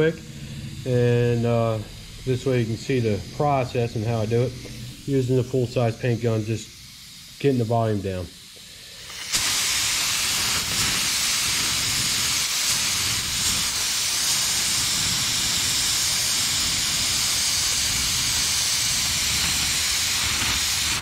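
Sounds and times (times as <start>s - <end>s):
paint spray gun hissing: 0.0s - 21.0s.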